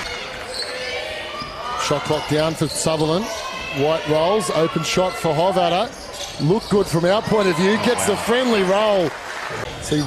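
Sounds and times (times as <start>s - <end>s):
sneaker squeaks: 0.0s - 3.8s, 4.9s - 7.6s.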